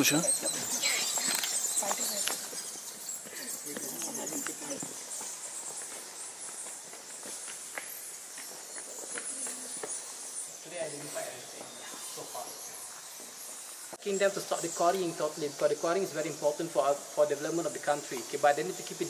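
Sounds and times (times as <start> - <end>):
bats squeaking and chittering: 0.0 - 19.0
footsteps on stone steps: 0.5 - 10.4, 11.0 - 14.2.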